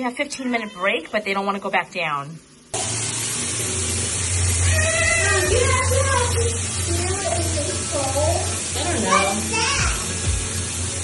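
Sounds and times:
water rushing into bathtub: 1.6 - 11.0
children's voices: 4.7 - 10.1.

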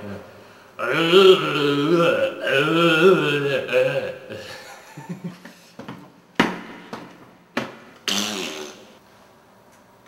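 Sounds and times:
man's stifled laughter: 4.3 - 5.7.

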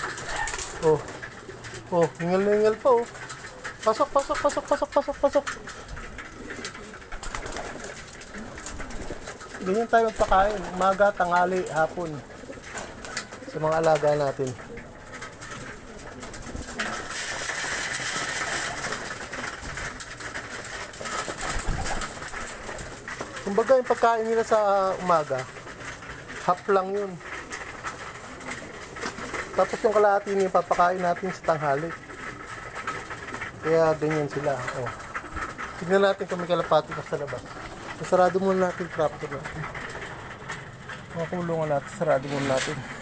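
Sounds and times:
pigeons cooing: 0.0 - 43.0
pigeons pecking on concrete: 0.0 - 43.0.

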